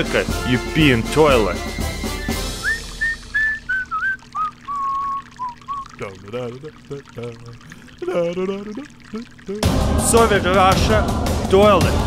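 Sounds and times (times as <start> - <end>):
urine trickling into toilet: 0.0 - 12.0
man whistling a tune: 1.3 - 6.0
low vocal sounds: 6.0 - 12.0.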